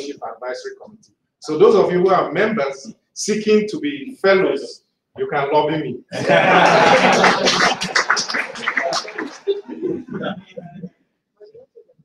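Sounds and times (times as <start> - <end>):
audience laughing: 6.2 - 10.6
scattered clapping: 6.6 - 10.1.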